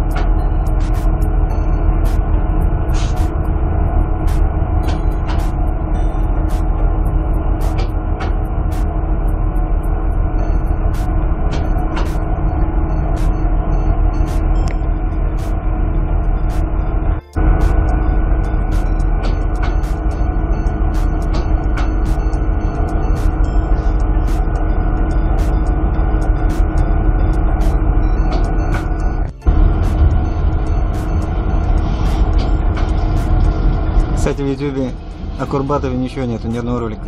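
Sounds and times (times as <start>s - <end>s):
low engine rumble and hum: 0.0s - 37.0s.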